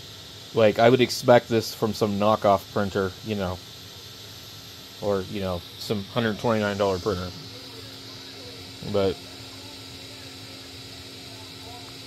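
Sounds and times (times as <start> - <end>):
printer fans humming: 0.0 - 12.0.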